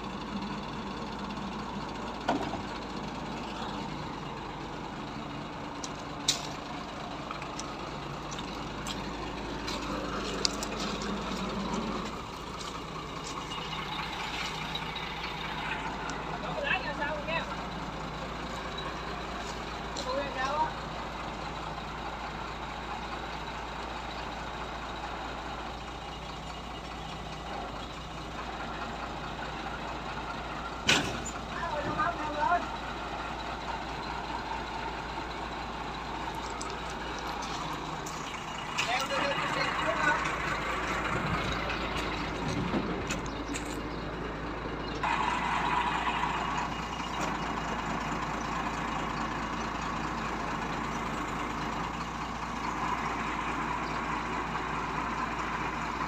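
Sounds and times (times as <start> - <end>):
truck engine running: 0.0 - 56.0.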